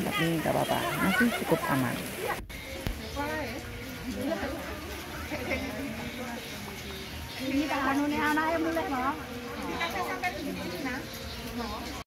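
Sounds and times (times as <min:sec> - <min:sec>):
women chatting quietly: 0:00.0 - 0:12.0.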